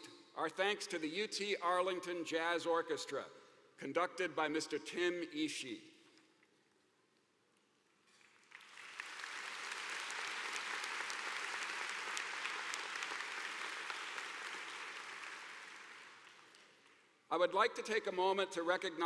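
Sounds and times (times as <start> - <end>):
large audience applauding: 8.2 - 17.1.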